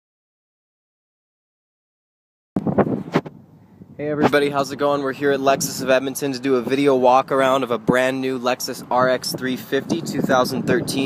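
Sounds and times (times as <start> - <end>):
wind buffeting microphone: 2.6 - 11.0.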